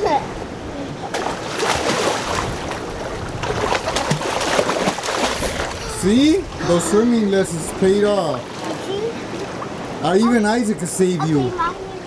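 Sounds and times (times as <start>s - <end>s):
water splashing in pool: 1.0s - 7.2s, 8.2s - 10.0s.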